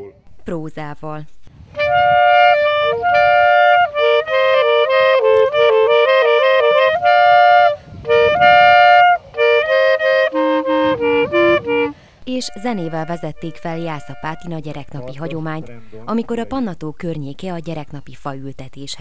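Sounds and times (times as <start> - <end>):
clarinet duet: 1.7 - 15.3.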